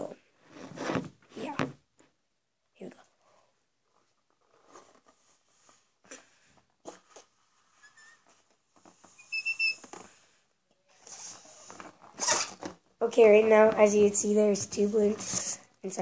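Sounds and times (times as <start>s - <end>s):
high rubber squeak: 7.8s - 8.2s, 9.1s - 9.9s, 12.2s - 12.6s.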